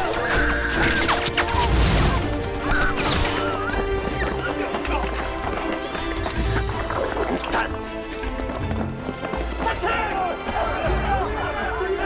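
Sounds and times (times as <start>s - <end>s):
dramatic orchestral score: 0.0s - 12.0s
voices shouting: 9.6s - 12.0s.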